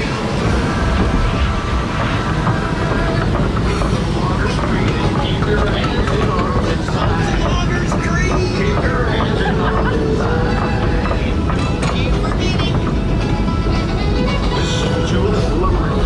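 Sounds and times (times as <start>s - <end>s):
background voices: 0.0s - 16.0s
chain conveyor rumble and rattle: 0.0s - 16.0s.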